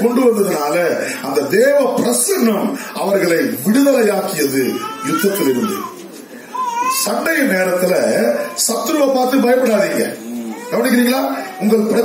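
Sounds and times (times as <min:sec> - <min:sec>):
man preaching: 0:00.0 - 0:06.0, 0:06.7 - 0:12.0.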